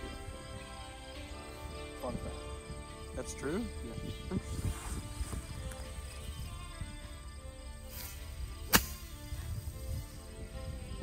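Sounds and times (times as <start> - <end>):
golf club striking ball: 8.7 - 9.3.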